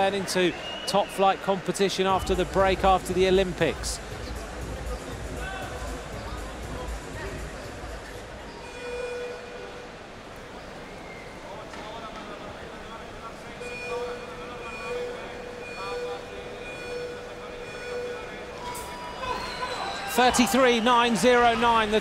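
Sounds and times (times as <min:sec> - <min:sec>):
crowd murmur: 0:04.0 - 0:08.7, 0:09.5 - 0:22.0
countdown beeps: 0:13.6 - 0:20.2.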